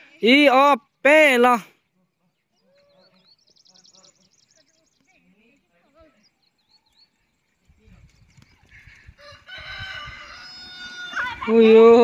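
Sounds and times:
small birds chirping: 0.0s - 9.4s
rooster crowing: 9.2s - 11.4s.

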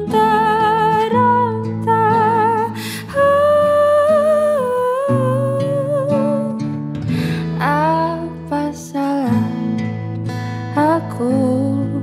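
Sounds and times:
soft acoustic guitar: 0.0s - 12.0s.

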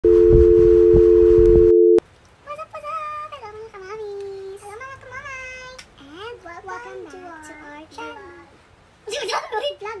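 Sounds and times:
two-note electronic test tone: 0.0s - 2.0s
crackly static hiss: 0.1s - 10.0s.

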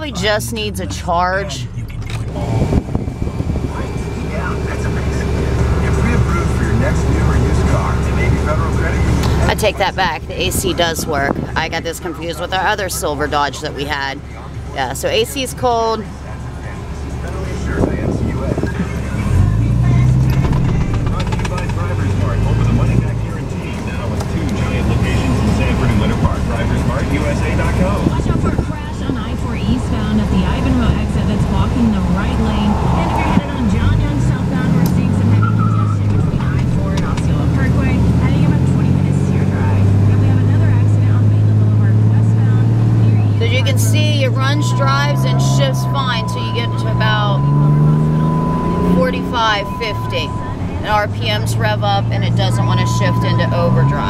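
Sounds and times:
diesel truck engine drone: 0.0s - 54.0s.

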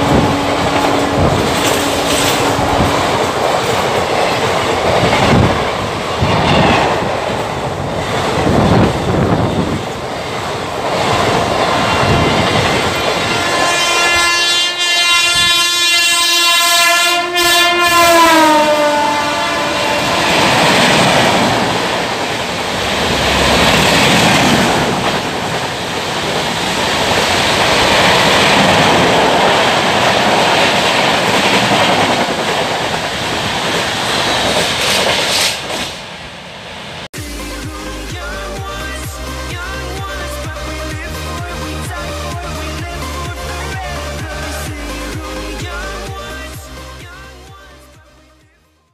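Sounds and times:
locomotive horn: 0.0s - 3.3s, 11.7s - 21.2s
rush of passing train: 0.0s - 48.9s
train wheels clattering over joints: 0.1s - 6.7s.

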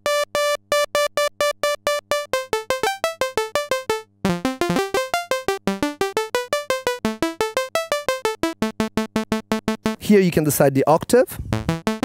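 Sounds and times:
synthesizer staccato pulses: 1.7s - 10.1s, 11.5s - 12.0s.

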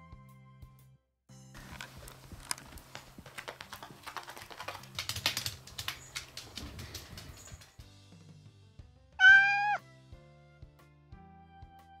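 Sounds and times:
quiet background music: 1.3s - 12.0s
cat meowing: 9.2s - 9.8s.

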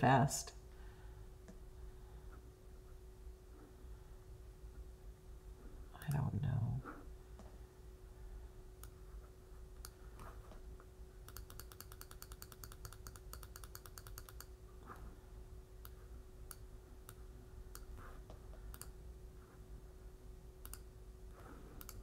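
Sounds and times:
faint steady hum: 0.0s - 22.0s
computer mouse clicking: 9.8s - 10.0s, 11.2s - 14.6s, 15.8s - 19.0s, 20.6s - 20.9s, 21.8s - 22.0s.

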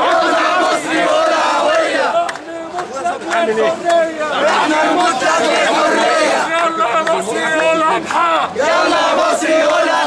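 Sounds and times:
men shouting slogans in unison: 0.0s - 10.0s.

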